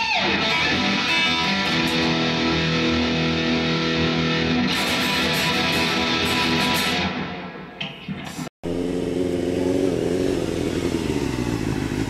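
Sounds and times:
electric guitar through amplifier: 0.0 - 8.4
vehicle engine running: 8.6 - 12.0.

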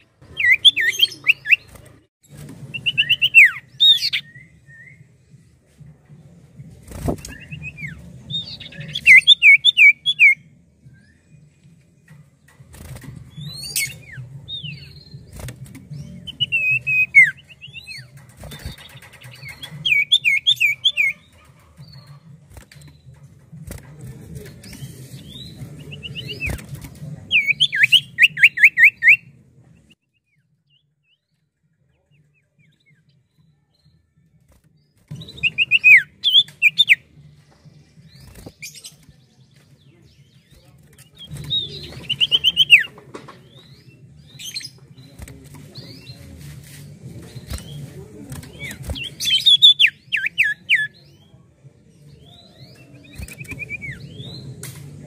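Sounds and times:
bird singing whistled notes: 0.3 - 1.8, 2.7 - 5.1, 7.2 - 11.5, 16.0 - 21.3, 27.3 - 29.3, 35.2 - 37.0, 40.2 - 45.2, 48.5 - 51.3, 52.2 - 54.5.

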